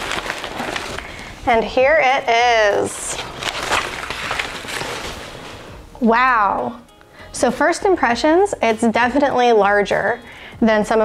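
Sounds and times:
packing paper rustling: 0.0 - 5.9.

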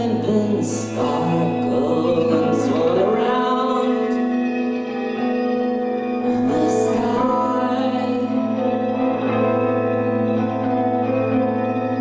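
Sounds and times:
electric guitars droning chords: 0.0 - 12.0.

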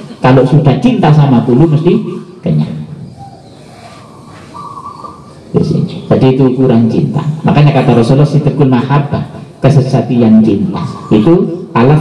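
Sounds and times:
man lecturing over microphone: 0.0 - 3.0, 5.5 - 12.0.

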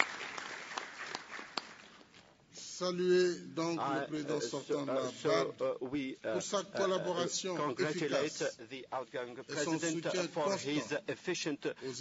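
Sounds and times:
audience applauding: 0.0 - 2.1.

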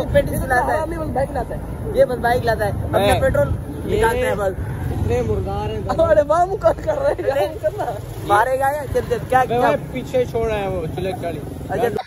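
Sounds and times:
street traffic rumble: 0.0 - 12.0
young men talking: 0.0 - 12.0.

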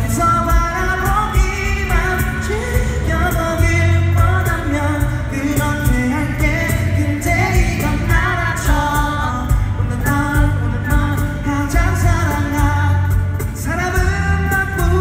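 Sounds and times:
acoustic guitar: 0.0 - 15.0
bass guitar: 0.0 - 15.0
cajon beat: 0.0 - 15.0
man singing: 0.0 - 15.0.

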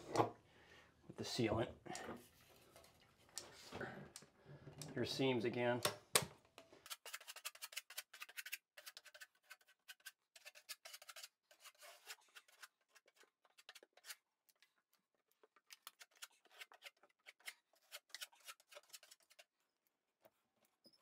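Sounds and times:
putty knife scraping: 6.8 - 14.7, 15.7 - 19.6.

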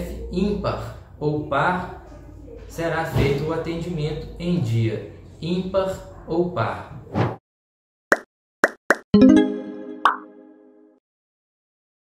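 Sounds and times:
bright musical chord: 9.2 - 10.9.

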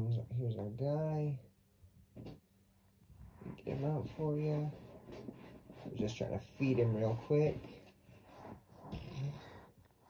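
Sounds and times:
shirt rustling against microphone: 3.1 - 10.0.

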